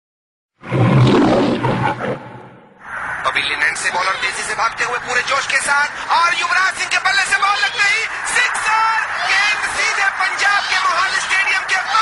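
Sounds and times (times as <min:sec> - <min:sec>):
lion roaring: 0:00.6 - 0:02.8.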